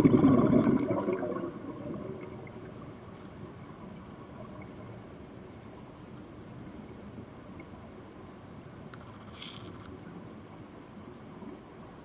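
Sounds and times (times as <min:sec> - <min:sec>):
diver's exhaled bubbles gurgling: 0:00.0 - 0:02.8
faint underwater hiss: 0:00.0 - 0:12.0.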